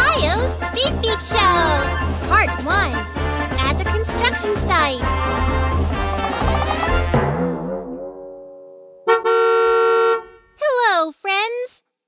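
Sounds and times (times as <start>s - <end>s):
music jingle: 0.0s - 9.0s
cartoon bus horn honk: 9.0s - 10.6s.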